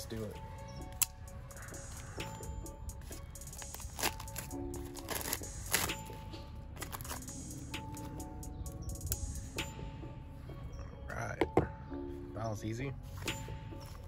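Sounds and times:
background music: 0.0 - 14.0
packaging crackling: 3.5 - 6.2, 6.8 - 7.3
knife cutting package: 3.6 - 6.2.

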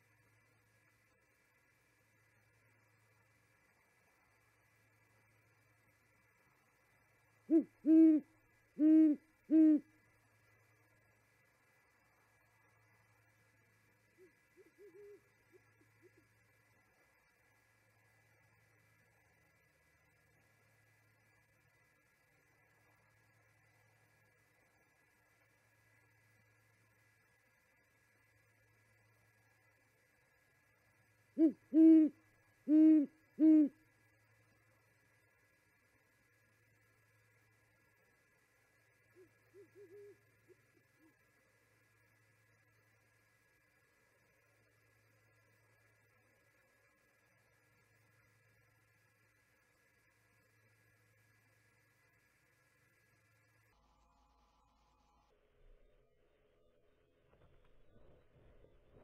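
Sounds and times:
owl hooting: 7.4 - 9.9, 14.1 - 16.4, 31.3 - 33.8, 39.1 - 41.2.

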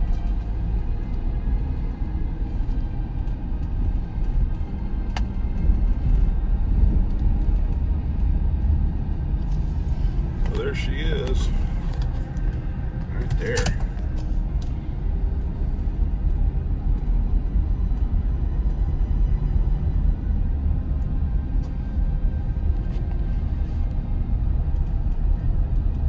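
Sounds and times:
car road and wind rumble: 0.0 - 26.0.

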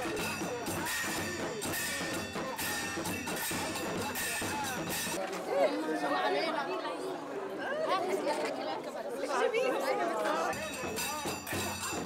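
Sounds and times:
children chattering: 3.7 - 12.0.

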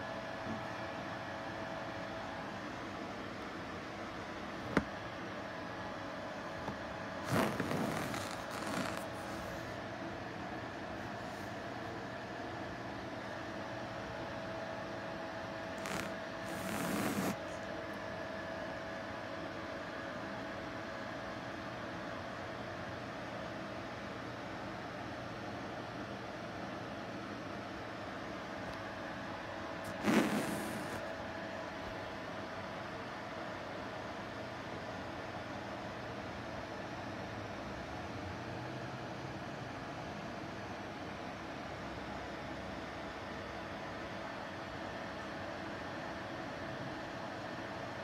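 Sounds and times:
faint hum: 0.0 - 37.7.

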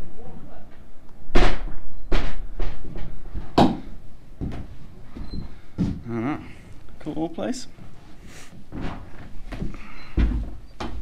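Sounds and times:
footsteps on wooden floorboards: 2.5 - 6.1, 7.7 - 11.0.

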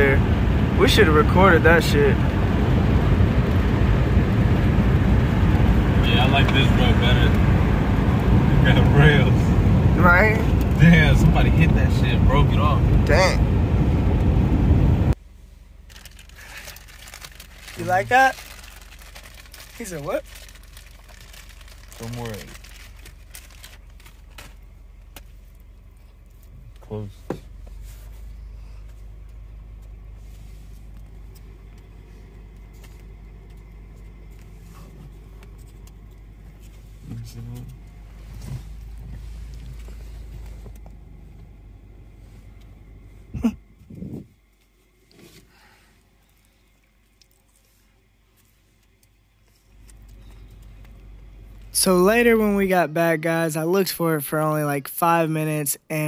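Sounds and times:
car driving rumble from inside: 0.0 - 53.2.

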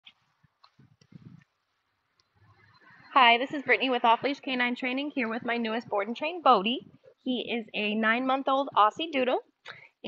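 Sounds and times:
faint low thuds: 0.8 - 1.5.

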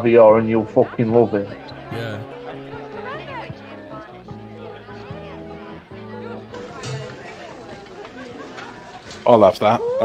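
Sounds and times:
murmur of voices: 1.5 - 6.5.

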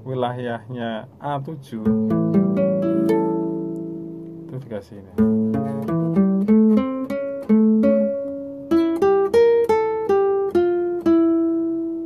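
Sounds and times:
classical guitar plucked melody: 1.6 - 12.0.

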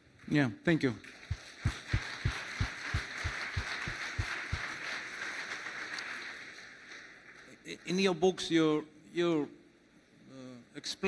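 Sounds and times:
audience applauding: 1.0 - 8.0
close hand claps thumping: 1.2 - 5.0.

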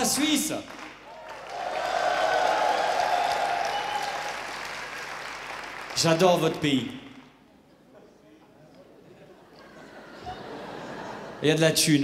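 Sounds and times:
audience applauding and cheering: 0.0 - 6.5.

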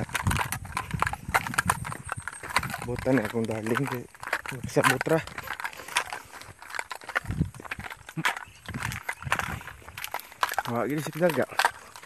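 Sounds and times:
footsteps on stony path: 0.0 - 12.0.

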